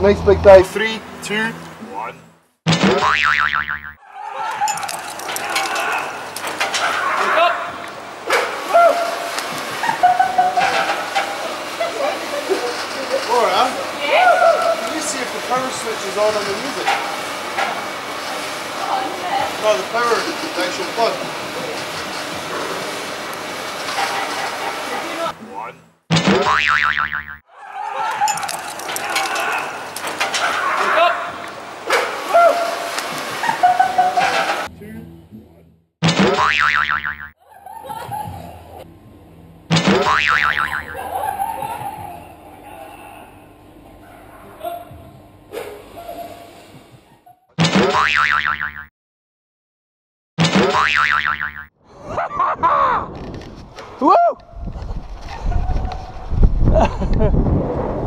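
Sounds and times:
cartoon boing sound effect: 0:02.7 - 0:04.0, 0:26.1 - 0:27.4, 0:36.0 - 0:37.4, 0:39.7 - 0:41.1, 0:47.6 - 0:48.9, 0:50.4 - 0:51.7.

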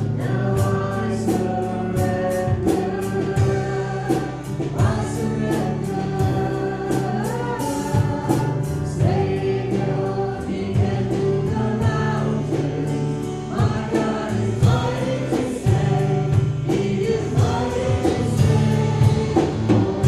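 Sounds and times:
congregation singing: 0:00.0 - 0:20.0
instrumental accompaniment: 0:00.0 - 0:20.0
percussion strokes: 0:10.1 - 0:20.0.

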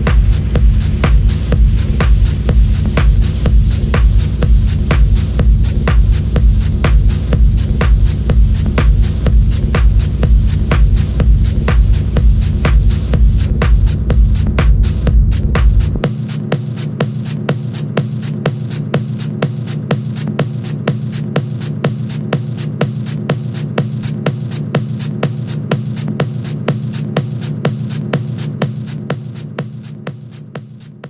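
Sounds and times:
deep throbbing bass line: 0:00.0 - 0:30.8.

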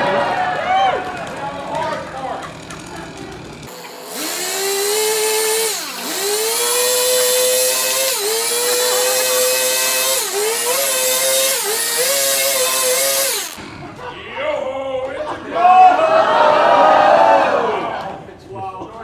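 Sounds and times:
chainsaw cutting log: 0:01.0 - 0:13.6.

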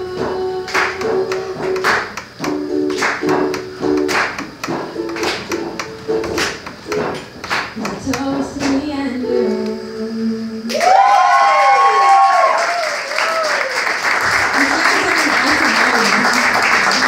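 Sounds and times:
acoustic guitar strumming: 0:00.0 - 0:10.3.

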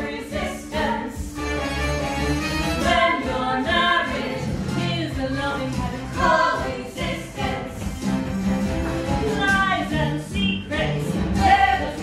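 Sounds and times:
instrumental accompaniment with bass: 0:00.0 - 0:12.0.

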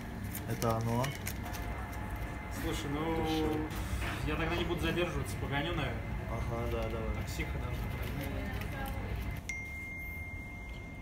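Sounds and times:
low background hum: 0:00.0 - 0:11.0
phone notification chime: 0:09.5 - 0:11.0.

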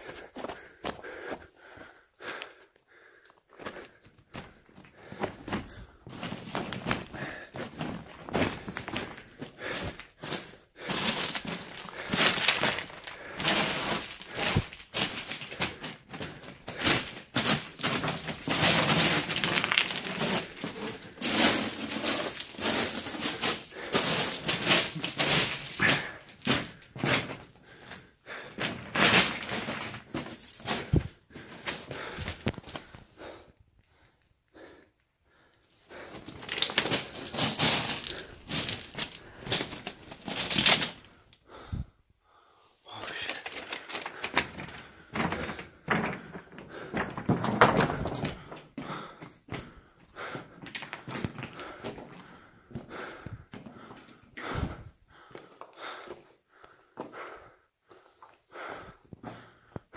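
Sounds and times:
footsteps crunching on loose rock: 0:03.5 - 0:27.8, 0:36.0 - 0:41.0
stones clattering: 0:10.9 - 0:26.9, 0:28.6 - 0:31.0, 0:36.1 - 0:41.0, 0:43.0 - 0:48.6.

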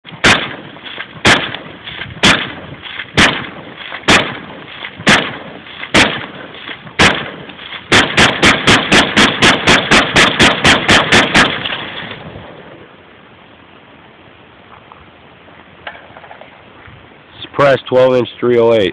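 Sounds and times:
suppressed rifle shots: 0:00.2 - 0:12.2.

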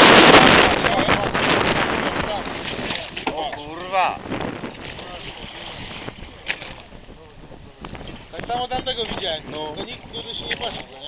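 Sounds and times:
choppy sea water washing: 0:00.0 - 0:11.0
wind noise on microphone: 0:00.0 - 0:11.0.

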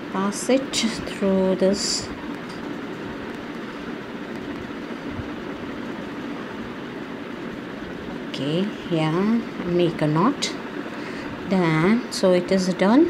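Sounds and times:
constant hiss: 0:00.0 - 0:13.0.

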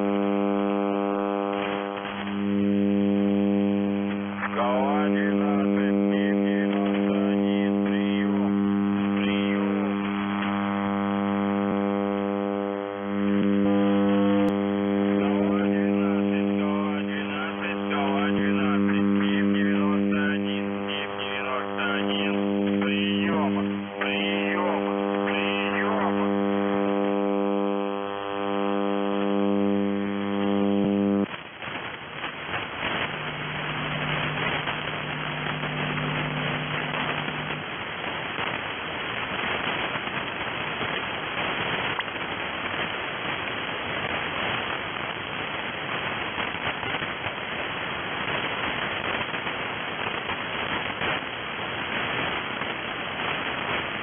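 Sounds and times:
person calling over radio: 0:00.0 - 0:31.3
radio static and hiss: 0:00.0 - 0:54.0
radio transmitter hum: 0:00.0 - 0:54.0.

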